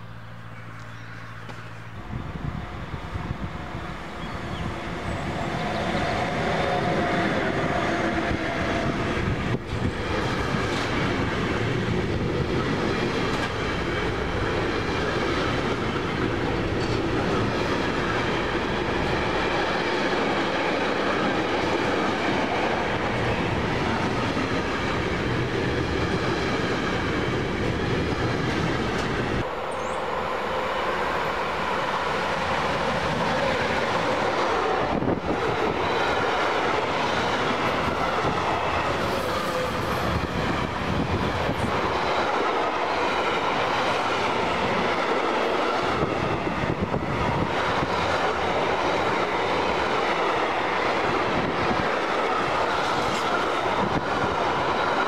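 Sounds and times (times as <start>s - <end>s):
freight train wheels on rail: 0.0s - 55.0s.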